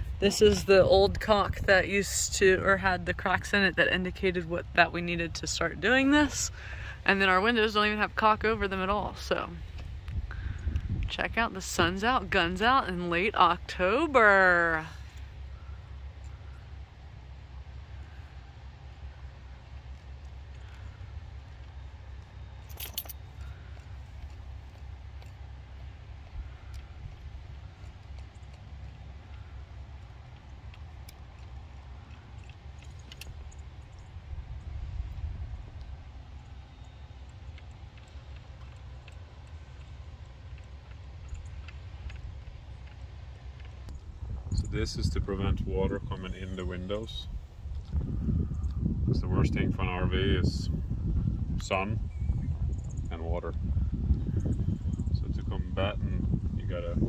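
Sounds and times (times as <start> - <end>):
wind on microphone: 0.0 - 13.9, 43.8 - 57.0.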